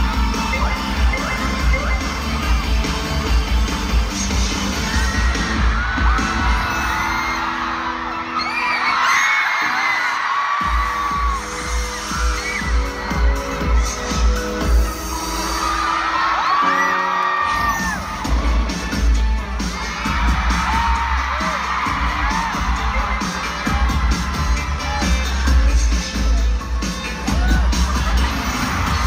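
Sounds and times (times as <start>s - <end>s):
crowd screaming: 0.0s - 3.3s, 4.1s - 29.0s
pop music with pulsing bass: 0.0s - 29.0s.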